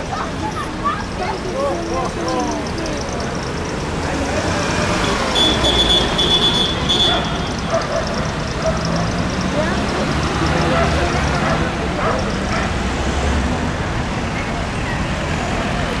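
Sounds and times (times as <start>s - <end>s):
indistinct voices: 0.0s - 16.0s
vehicle engines passing: 0.0s - 16.0s.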